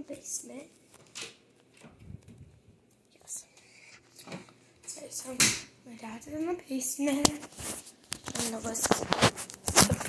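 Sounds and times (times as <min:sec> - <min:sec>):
soft whispering: 0:03.0 - 0:04.2.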